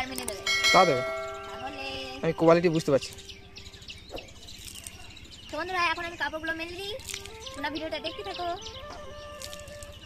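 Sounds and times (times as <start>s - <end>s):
low steady tone: 0.0s - 2.4s
birds chirping faintly: 0.0s - 10.0s.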